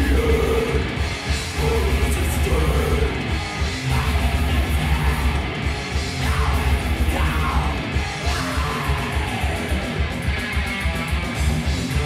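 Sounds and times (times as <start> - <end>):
harsh yelled vocals: 0.0 - 10.2
heavy metal band playing: 0.0 - 12.0.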